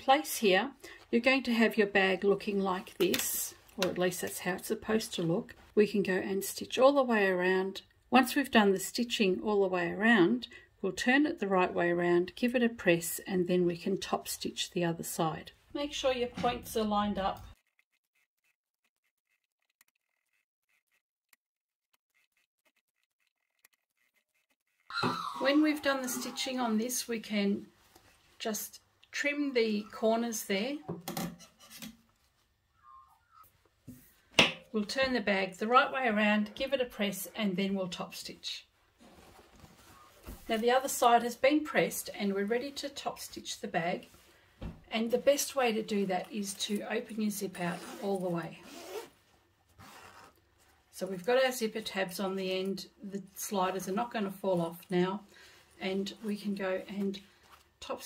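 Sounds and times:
woman speaking: 0:00.0 - 0:17.6, 0:24.9 - 0:27.7, 0:28.4 - 0:30.9, 0:34.8 - 0:38.7, 0:40.5 - 0:44.1, 0:44.9 - 0:48.6, 0:51.0 - 0:55.2, 0:55.8 - 0:57.2
faint fabric rustle: 0:25.8 - 0:28.9, 0:38.6 - 0:51.0, 0:54.4 - 0:58.0
fabric rustling: 0:38.8 - 0:40.8, 0:47.6 - 0:50.9, 0:55.8 - 0:58.0.

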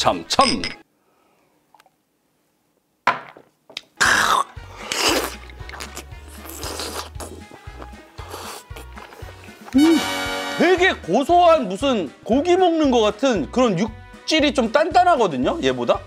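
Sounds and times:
slurping an oyster: 0:04.0 - 0:10.0
chewing: 0:04.8 - 0:09.8
background music with low beat: 0:05.3 - 0:16.0.

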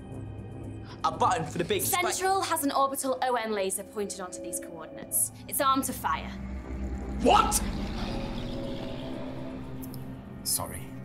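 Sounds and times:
low droning film music: 0:00.0 - 0:11.0.

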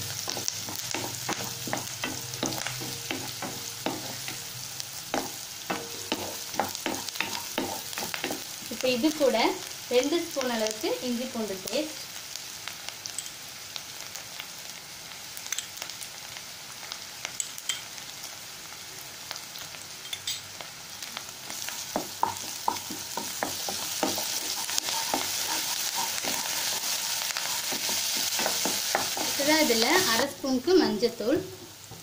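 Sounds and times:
shallots sizzling in oil: 0:00.0 - 0:32.0
wooden spatula scraping pan: 0:22.0 - 0:30.2.

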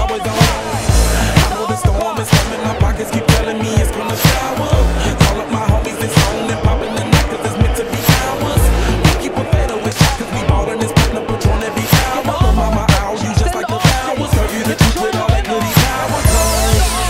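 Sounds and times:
deep bass notes: 0:00.0 - 0:13.4, 0:15.5 - 0:17.0
hip hop beat: 0:00.0 - 0:17.0.

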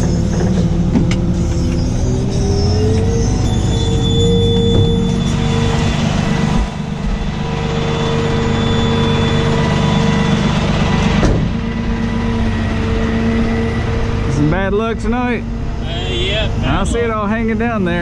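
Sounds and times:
diesel engine running: 0:00.0 - 0:18.0.

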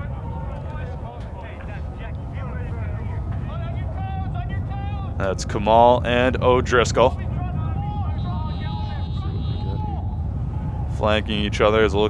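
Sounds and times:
distant voices calling out: 0:00.0 - 0:12.0
steady low rumble: 0:00.0 - 0:12.0.

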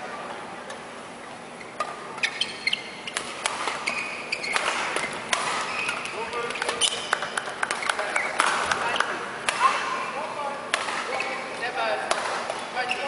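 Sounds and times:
shoes squeaking on court: 0:01.1 - 0:09.3, 0:11.1 - 0:11.7, 0:12.5 - 0:13.0
rackets striking shuttlecock: 0:03.1 - 0:09.9, 0:10.7 - 0:11.4, 0:12.0 - 0:12.7.

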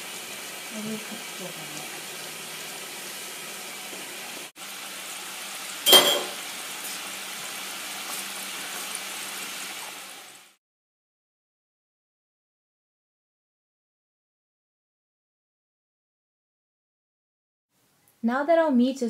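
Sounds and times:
sharp clink: 0:05.9 - 0:06.4.

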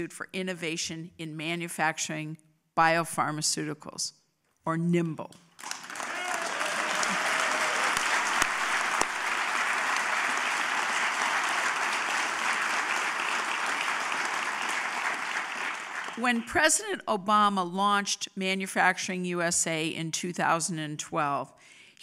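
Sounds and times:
audience applauding: 0:05.6 - 0:16.5.

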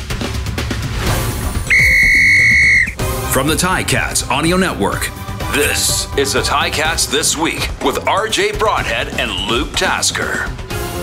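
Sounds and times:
loud whistle blast: 0:01.7 - 0:03.0.

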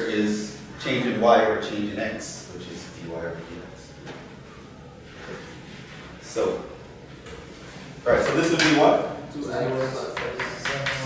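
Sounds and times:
lecture room noise: 0:00.0 - 0:11.0.

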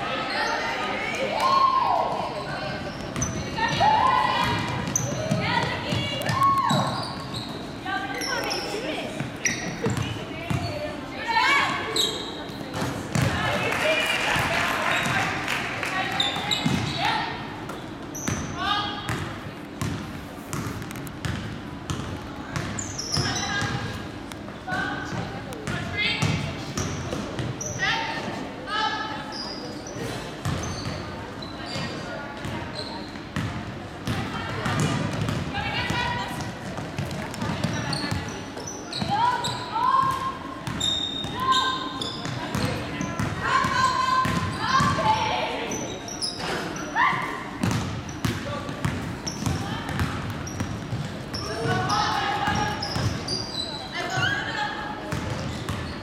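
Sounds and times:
players and spectators calling out: 0:00.0 - 0:12.5, 0:51.2 - 0:55.1
basketball bouncing on court: 0:03.0 - 0:07.5, 0:09.2 - 0:10.8, 0:12.5 - 0:13.6, 0:16.0 - 0:17.0, 0:18.1 - 0:24.0, 0:24.7 - 0:27.7, 0:30.4 - 0:31.1, 0:33.4 - 0:38.4, 0:39.9 - 0:45.2, 0:47.6 - 0:53.4, 0:55.1 - 0:56.0.

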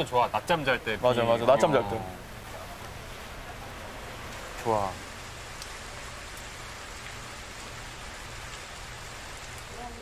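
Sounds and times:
rain on concrete and puddles: 0:00.0 - 0:10.0.

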